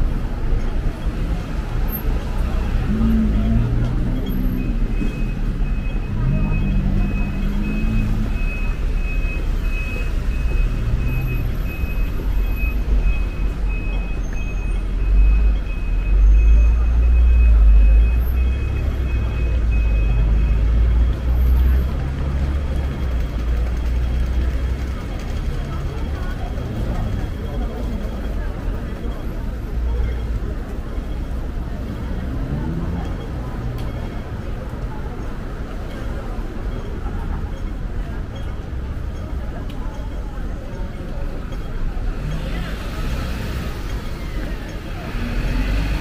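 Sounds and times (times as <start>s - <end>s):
low traffic rumble: 0.0s - 46.0s
high electronic beep: 2.9s - 20.6s.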